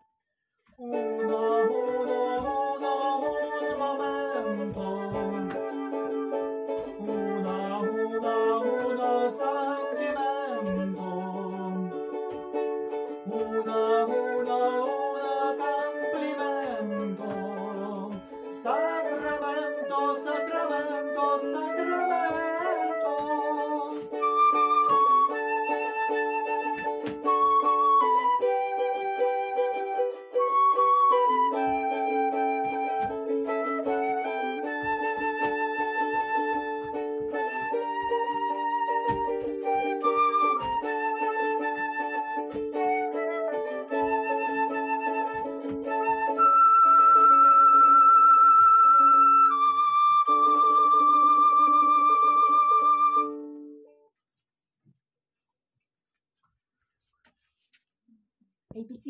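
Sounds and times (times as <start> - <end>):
strummed ukulele chords: 0.8 - 53.9
flute playing a melody: 0.8 - 54.0.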